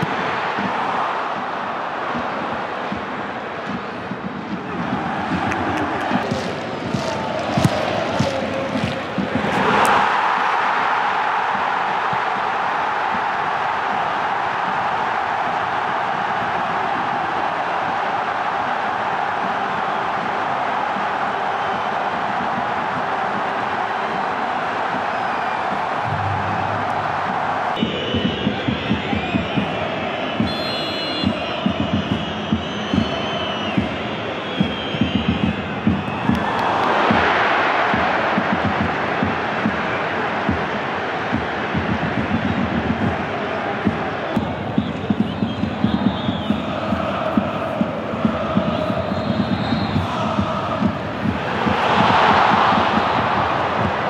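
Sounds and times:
crowd chanting with rhythmic beats: 0.0s - 54.0s
stadium crowd roaring: 0.0s - 54.0s.

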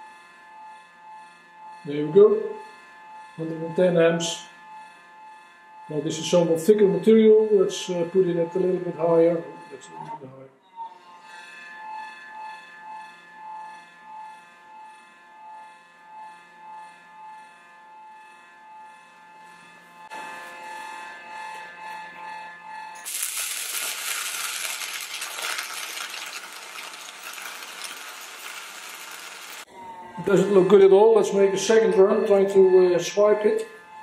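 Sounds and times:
welding arc crackling and sizzling: 23.0s - 29.7s.

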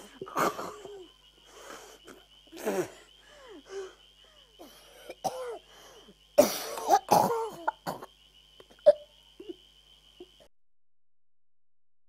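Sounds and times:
person coughing: 5.1s - 5.6s, 6.4s - 8.1s, 8.8s - 9.0s.

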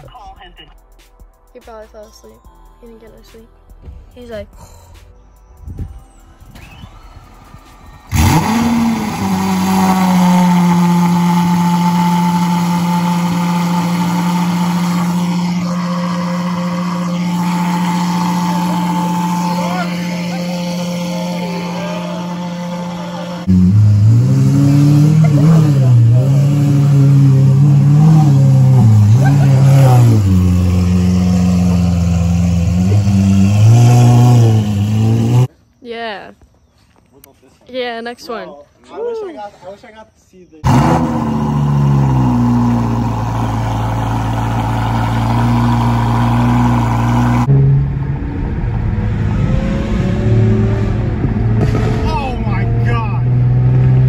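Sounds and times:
car engine revving: 6.4s - 35.5s, 40.6s - 54.0s
car engine loud idle: 8.1s - 24.2s, 40.7s - 47.5s.

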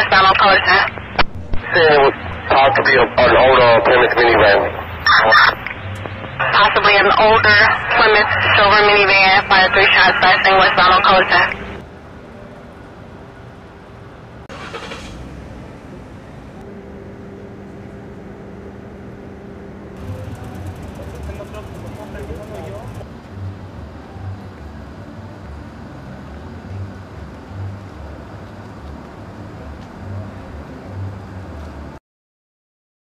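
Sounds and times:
faint voices: 0.0s - 13.0s, 20.0s - 23.1s
low hum: 0.0s - 31.5s
deep rumbles: 20.0s - 23.2s.

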